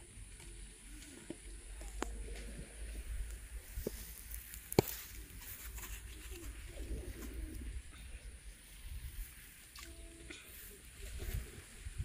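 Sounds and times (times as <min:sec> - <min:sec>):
dove cooing: 0:05.2 - 0:08.5.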